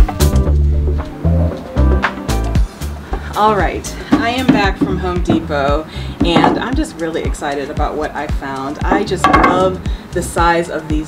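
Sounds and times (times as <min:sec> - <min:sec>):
background music with bass line: 0:00.0 - 0:11.0
woman talking: 0:03.3 - 0:11.0.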